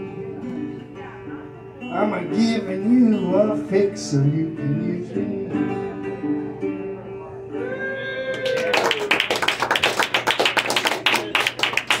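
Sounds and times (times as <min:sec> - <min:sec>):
small audience applauding: 0:08.2 - 0:12.0
loud close claps: 0:08.4 - 0:12.0.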